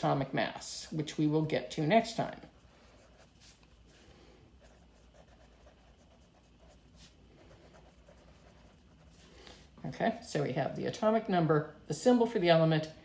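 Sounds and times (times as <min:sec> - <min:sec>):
pen scratching on paper: 0:04.6 - 0:09.2.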